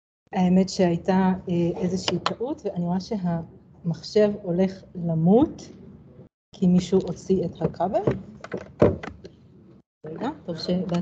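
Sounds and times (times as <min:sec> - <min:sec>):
knocks and thumps: 0:07.6 - 0:09.3.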